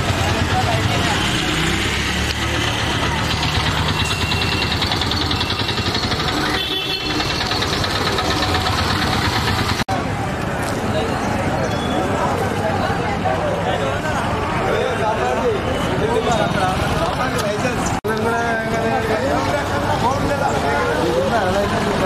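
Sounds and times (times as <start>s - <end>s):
people's voices: 0.0s - 22.0s
vehicle engines running: 0.0s - 22.0s.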